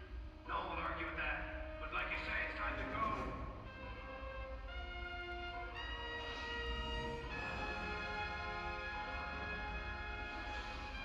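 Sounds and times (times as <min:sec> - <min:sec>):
orchestra playing slow chords: 0:00.0 - 0:11.0
man speaking: 0:00.5 - 0:03.4.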